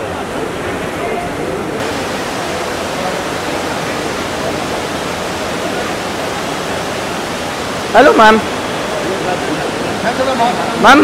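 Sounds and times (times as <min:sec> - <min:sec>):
faint voices: 0:00.0 - 0:11.0
steady rushing noise: 0:01.8 - 0:11.0.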